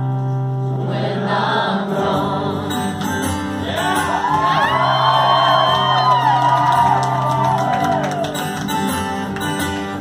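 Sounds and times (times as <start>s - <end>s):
acoustic guitar: 0.0s - 10.0s
audience whooping and shouting: 3.7s - 8.6s.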